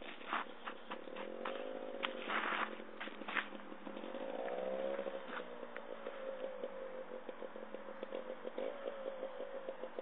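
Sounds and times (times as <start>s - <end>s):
footsteps scuffing on dirt: 0.0s - 5.5s
two-stroke motorcycle engine revving: 0.2s - 10.0s.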